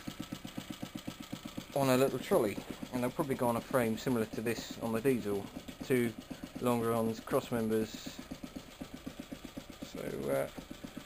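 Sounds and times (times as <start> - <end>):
stationary engine idling: 0.0 - 11.0.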